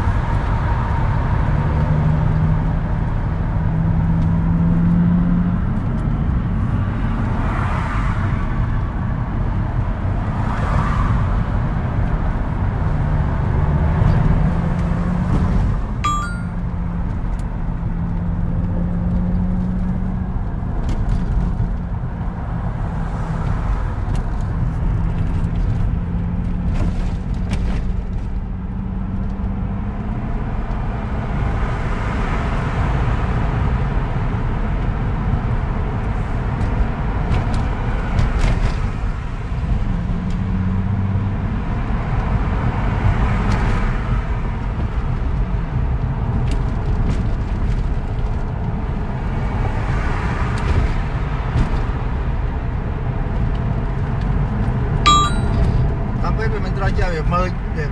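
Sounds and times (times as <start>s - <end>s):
car road noise: 0.0s - 57.9s.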